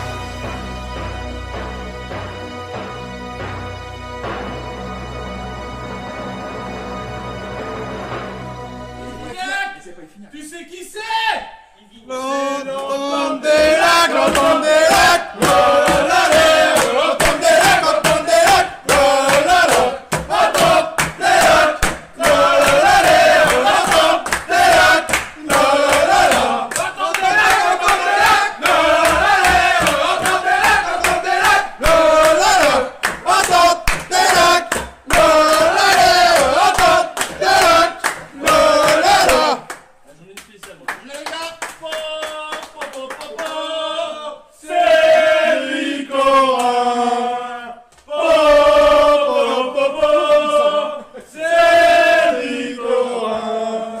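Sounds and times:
men chanting together: 0:12.1 - 0:39.8, 0:43.4 - 0:54.0
hand clapping: 0:12.8 - 0:43.7.

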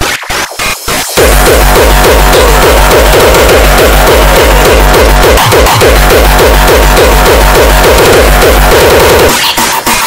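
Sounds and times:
rapid repeating synth figures: 0:00.0 - 0:10.0
deep pulsing bass line: 0:01.2 - 0:09.4.

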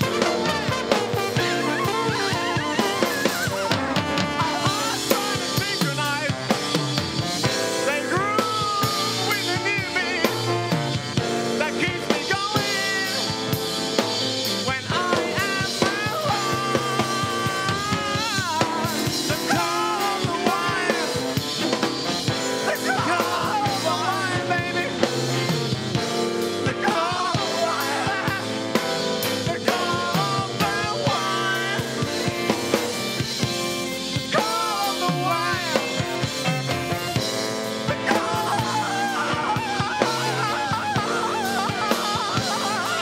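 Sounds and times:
drum kit beat: 0:00.0 - 0:43.0.

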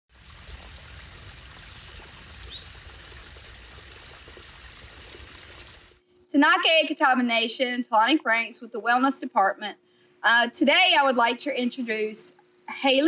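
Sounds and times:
water rushing: 0:00.1 - 0:06.0.

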